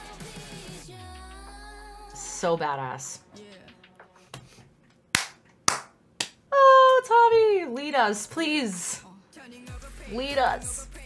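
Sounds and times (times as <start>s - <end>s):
sharp hand claps: 5.1s - 6.4s.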